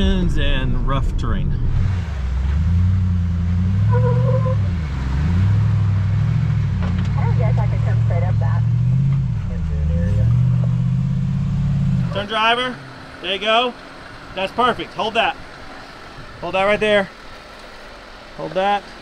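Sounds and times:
car engine revving: 0:00.0 - 0:19.0
voices: 0:06.8 - 0:08.8, 0:12.0 - 0:17.2, 0:18.3 - 0:19.0.

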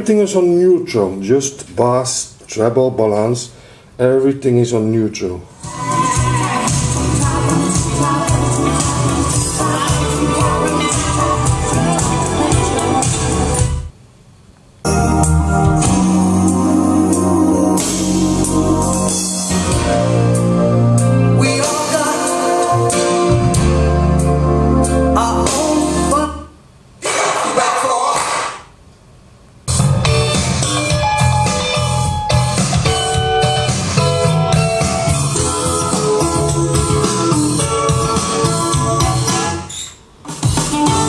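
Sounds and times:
bass line: 0:05.6 - 0:13.9, 0:14.9 - 0:26.4, 0:29.7 - 0:39.6
keyboard music through speakers: 0:05.6 - 0:13.9, 0:14.9 - 0:26.5, 0:29.7 - 0:39.7, 0:40.3 - 0:41.0.

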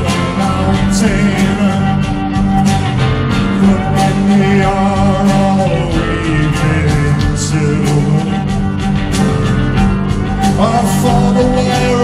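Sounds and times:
electric guitar: 0:00.0 - 0:12.0
keyboards: 0:00.0 - 0:12.0
steady drum beat: 0:00.0 - 0:12.0.

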